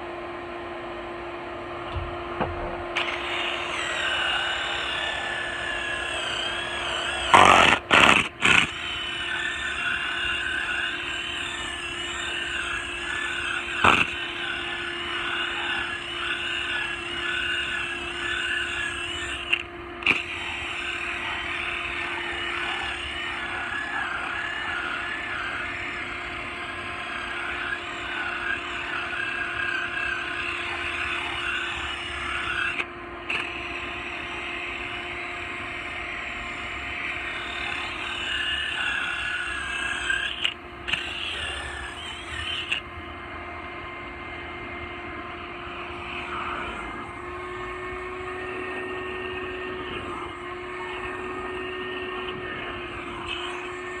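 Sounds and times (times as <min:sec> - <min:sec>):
carpet extractor motor humming: 0:00.0 - 0:54.0.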